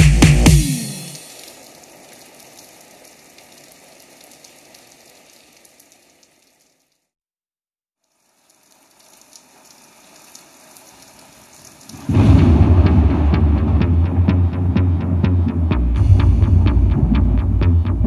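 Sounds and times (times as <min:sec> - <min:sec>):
music: 0:00.0 - 0:01.2, 0:12.4 - 0:18.0
vinyl crackle and hiss: 0:00.0 - 0:07.1, 0:08.0 - 0:12.2.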